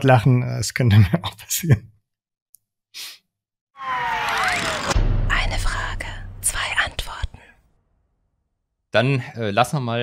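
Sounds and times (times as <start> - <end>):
deep boom: 4.4 - 8.0.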